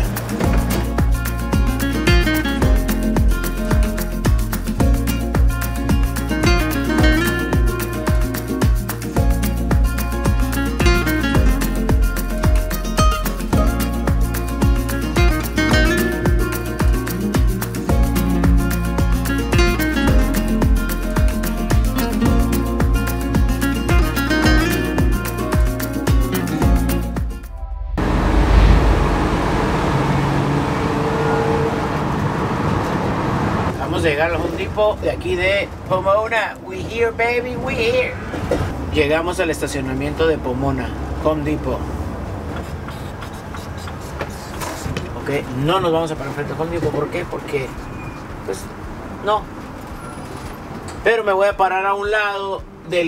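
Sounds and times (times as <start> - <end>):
guitar music: 0.0 - 28.8
van engine and tyres droning: 27.5 - 37.1, 38.0 - 51.3
vehicle driving on road: 27.5 - 51.2.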